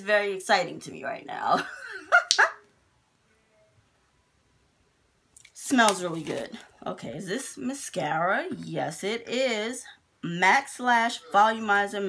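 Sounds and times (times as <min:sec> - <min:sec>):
woman laughing: 0:01.5 - 0:02.6.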